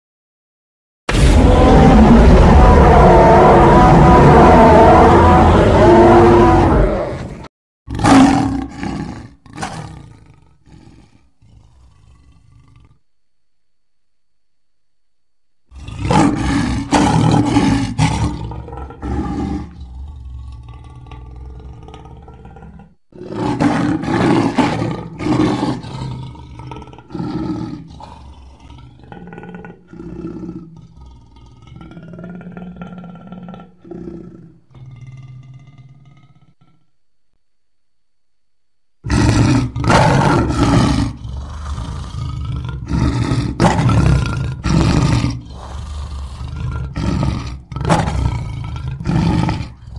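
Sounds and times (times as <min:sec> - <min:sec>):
dinosaur roars and growls: 0:01.1 - 0:13.0, 0:15.7 - 0:36.9, 0:39.1 - 0:49.9.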